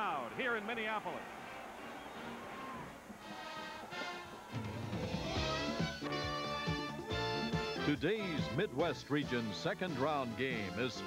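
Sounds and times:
sports theme music: 0.0 - 11.0.

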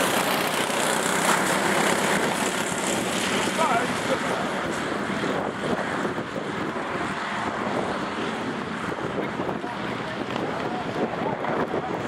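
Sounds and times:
distant go-kart engines: 0.0 - 12.0
wind noise on microphone: 0.0 - 12.0.

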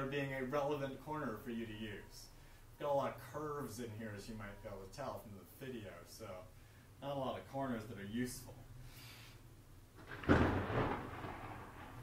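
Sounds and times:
thunder crack and rumble: 10.0 - 12.0.

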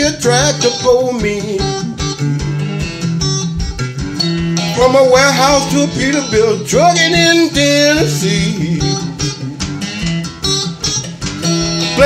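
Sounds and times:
person singing: 0.0 - 3.0, 4.6 - 9.4
blues guitar plucking and strumming: 0.0 - 12.0.

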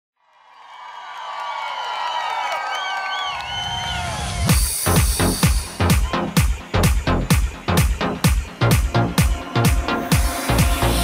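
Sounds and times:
audience cheering and shrieking: 0.3 - 4.8.

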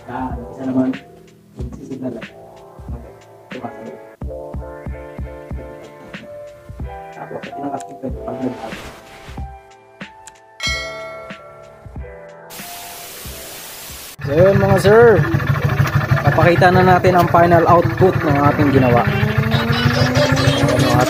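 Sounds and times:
burst of hiss: 12.5 - 14.2.

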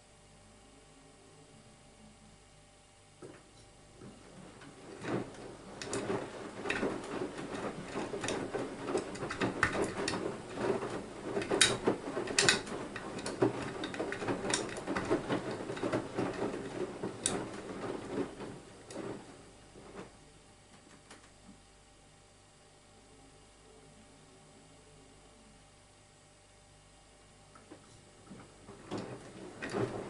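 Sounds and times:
washing machine drum tumbling: 3.2 - 21.3, 27.7 - 30.0
wet laundry sloshing: 4.0 - 20.2, 28.3 - 30.0.

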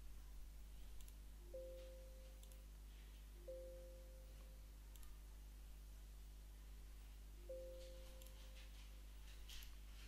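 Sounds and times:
faint mouse clicks: 0.9 - 1.2, 2.4 - 2.7, 4.4 - 5.2.

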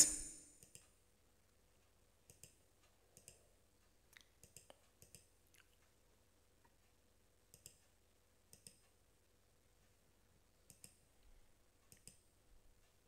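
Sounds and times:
computer mouse clicks: 2.2 - 3.5, 4.4 - 5.3, 7.5 - 9.0, 10.6 - 11.0, 11.8 - 12.3.

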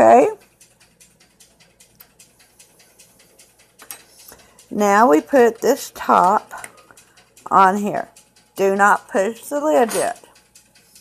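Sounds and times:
quick even ticking: 0.0 - 11.0.

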